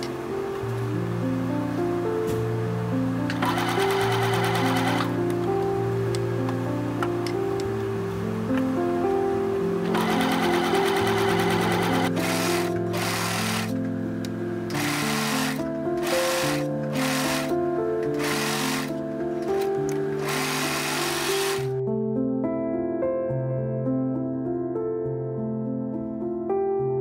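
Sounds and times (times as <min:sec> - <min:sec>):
soft background music: 0:00.0 - 0:27.0
sewing machine stitching: 0:03.3 - 0:05.1, 0:09.9 - 0:13.7, 0:14.7 - 0:17.5, 0:18.1 - 0:18.9, 0:20.2 - 0:21.7
serger running in bursts: 0:09.9 - 0:13.7, 0:14.8 - 0:17.5, 0:18.2 - 0:18.9, 0:20.2 - 0:21.7.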